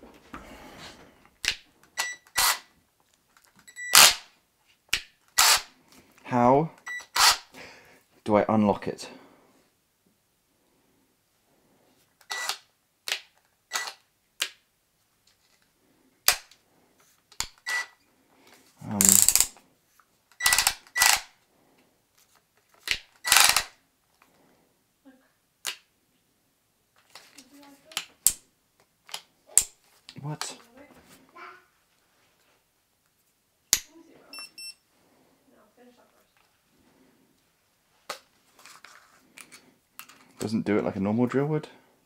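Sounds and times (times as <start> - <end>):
plastic clicks and snaps of drill: 20.3 - 21.3.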